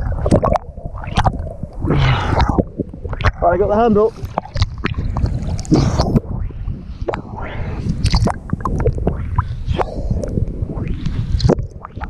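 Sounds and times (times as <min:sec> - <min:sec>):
water sloshing and splashing: 0:00.0 - 0:10.0.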